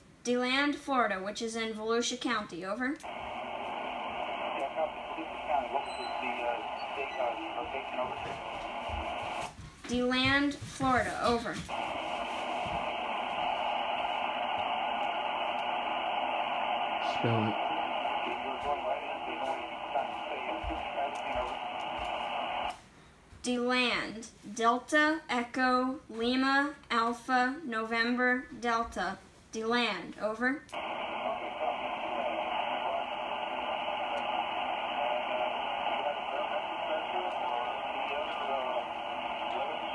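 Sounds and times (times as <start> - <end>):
faint voice over radio: 3.0 - 9.4, 11.7 - 22.7, 30.8 - 39.9
radio static hiss: 3.0 - 22.8, 30.7 - 39.9.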